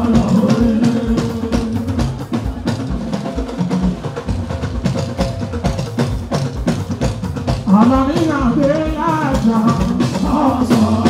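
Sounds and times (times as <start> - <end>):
quick drum strokes: 0.0 - 11.0.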